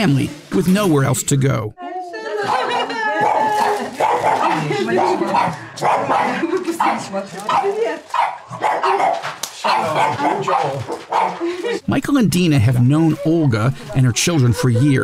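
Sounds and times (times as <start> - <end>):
people talking: 0.0 - 8.1, 9.6 - 15.0
dog barking: 2.5 - 11.4.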